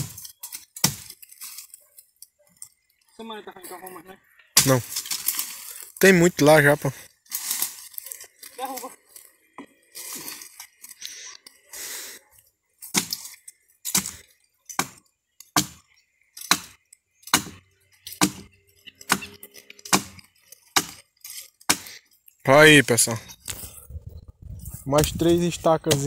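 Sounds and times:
chopping into tree trunk: 0.0 - 1.2, 4.6 - 5.3, 12.8 - 13.3, 13.9 - 17.6, 18.2 - 18.5, 19.1 - 21.0, 21.7 - 21.9.

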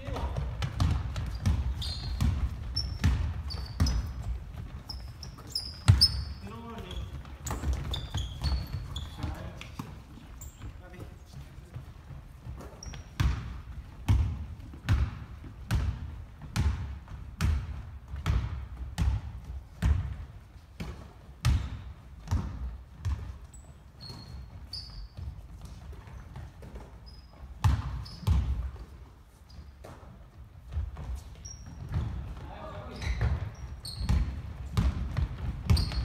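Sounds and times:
basketball bouncing on hardwood: 0.0 - 10.0, 11.7 - 23.4, 27.6 - 28.9, 30.7 - 36.0
sneaker squeaks on floor: 0.0 - 11.8, 12.4 - 14.2, 23.0 - 36.0.

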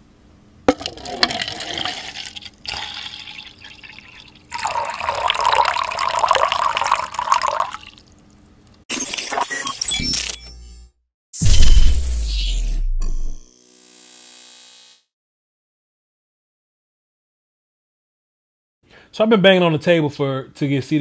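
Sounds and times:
water pouring into plastic cup: 0.7 - 8.1
loud burst of noise: 11.4 - 13.5.

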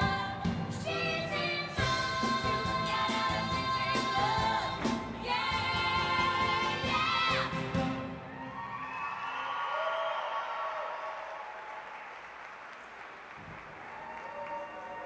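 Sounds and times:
audience applauding and cheering: 6.6 - 15.0.

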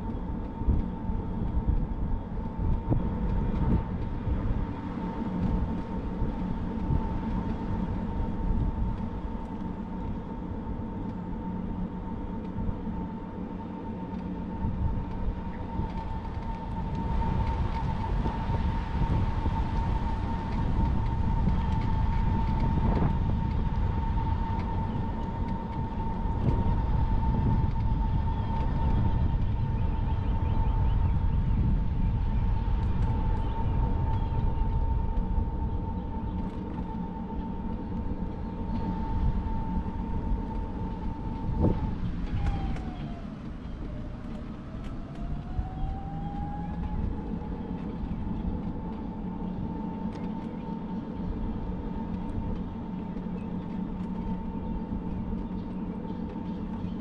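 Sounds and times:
electric scooter motor whining: 0.0 - 57.0
wind on microphone: 0.0 - 57.0.

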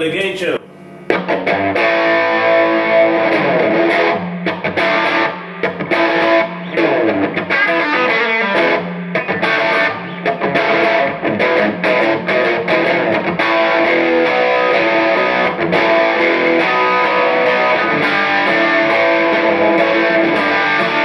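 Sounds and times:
overdriven electric guitar riffing: 0.0 - 21.0.

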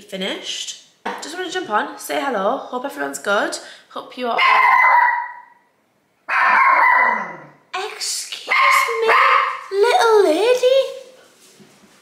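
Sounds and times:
small dog barking: 4.4 - 5.6, 6.3 - 7.5, 8.5 - 9.7.

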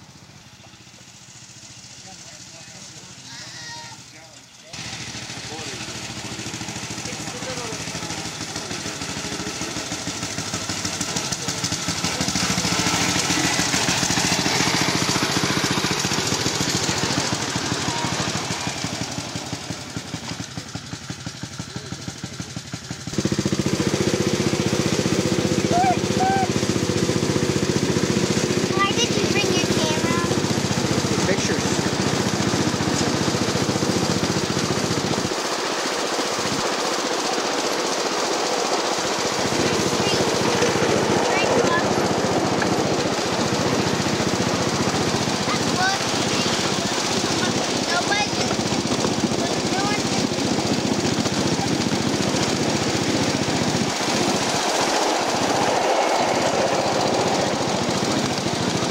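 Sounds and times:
small engine chugging: 0.0 - 58.9.

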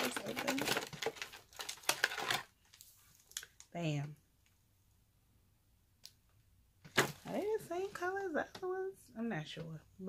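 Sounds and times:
plastic packaging ripped open: 0.0 - 2.5.

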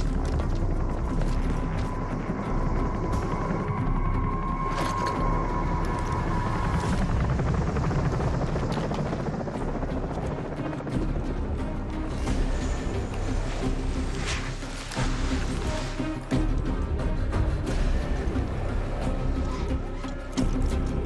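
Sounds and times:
helicopter rotor beating: 0.0 - 21.0.

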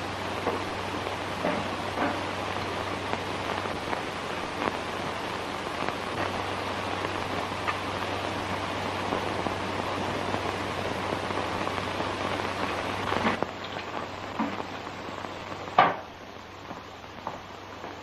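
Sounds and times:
film soundtrack hiss and crackle: 0.0 - 18.0.

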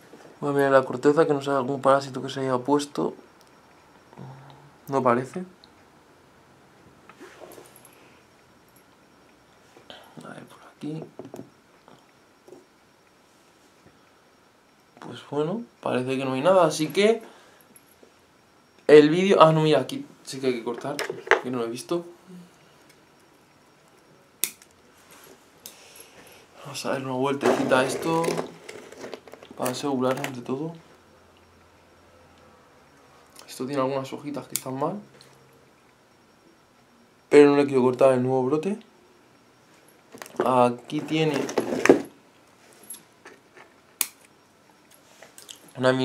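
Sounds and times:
sharp click: 24.4 - 24.7, 44.0 - 44.3.

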